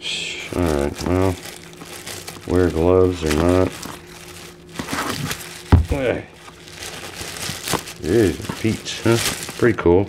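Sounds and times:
plastic wrap crinkling: 0:00.2 - 0:10.0.

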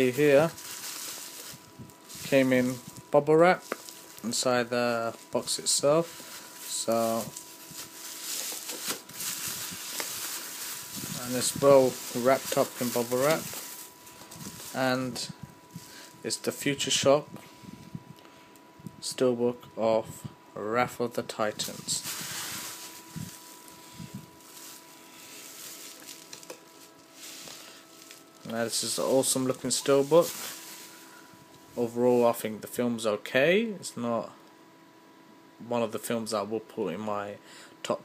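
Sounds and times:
bubble wrap crinkling: 0:00.0 - 0:16.3, 0:21.5 - 0:32.4.

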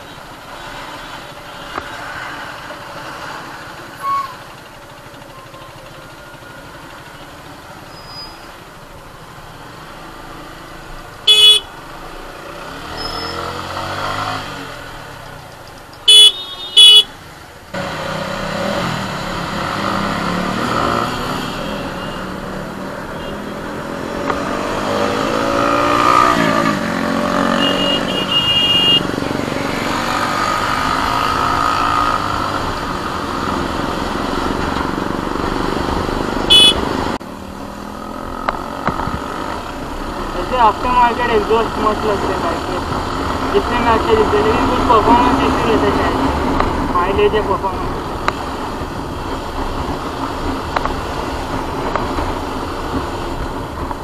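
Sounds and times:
road noise: 0:00.0 - 0:54.0
vehicle horn toots: 0:11.3 - 0:11.7, 0:16.1 - 0:17.1, 0:27.5 - 0:29.1, 0:36.5 - 0:36.8
motorcycle engine revving: 0:12.2 - 0:15.4, 0:17.7 - 0:53.7.

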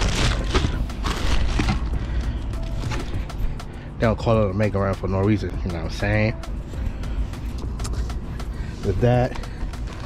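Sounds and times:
plastic wrapping crinkling: 0:00.0 - 0:03.4.

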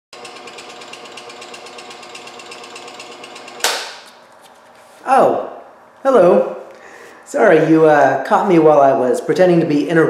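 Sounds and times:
scroll saw chattering: 0:00.2 - 0:03.8.

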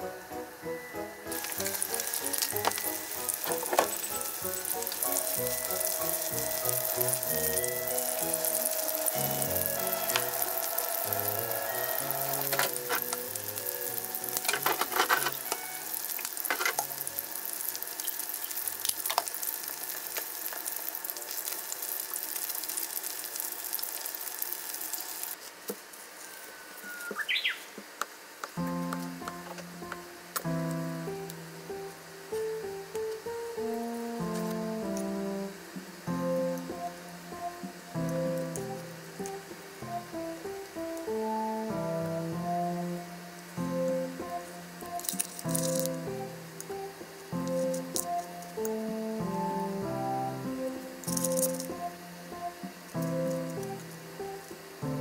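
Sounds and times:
chicken sizzling in frying pan: 0:01.2 - 0:25.4.

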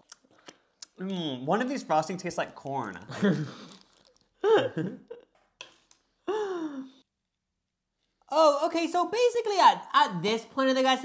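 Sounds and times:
person sighing: 0:04.4 - 0:05.0, 0:06.2 - 0:07.0.

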